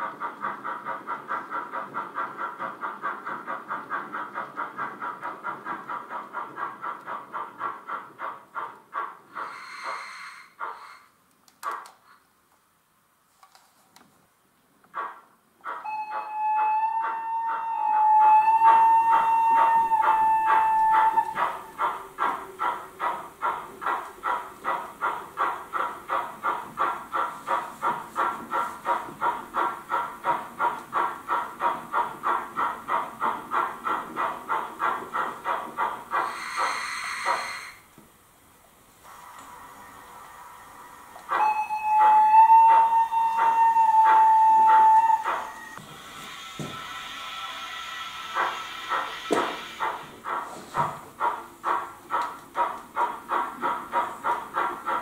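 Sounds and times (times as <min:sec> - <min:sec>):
steam hiss: 0:00.0 - 0:11.2, 0:15.0 - 0:37.9, 0:38.8 - 0:55.0
rhythmic steam chuffs: 0:00.0 - 0:11.3, 0:14.9 - 0:55.0
steam locomotive whistle: 0:15.8 - 0:21.8, 0:36.2 - 0:37.9, 0:39.1 - 0:50.1.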